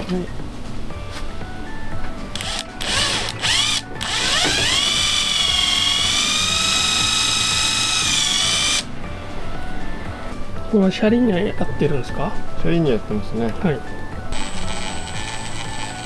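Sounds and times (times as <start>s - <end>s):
drill motor whining: 2.4s - 8.9s, 14.3s - 16.0s.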